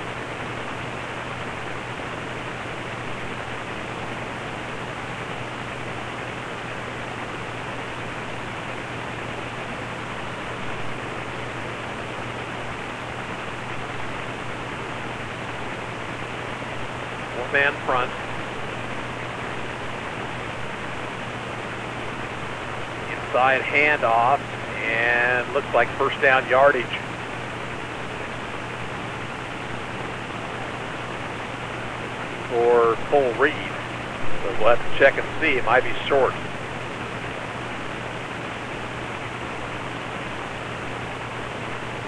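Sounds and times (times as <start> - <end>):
low hum: 0.0 - 42.0.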